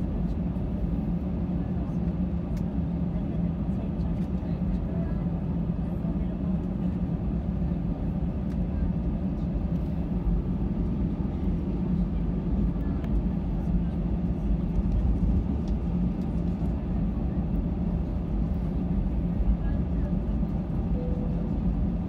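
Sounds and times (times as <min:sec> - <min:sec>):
airliner cabin engine rumble: 0:00.0 - 0:22.0.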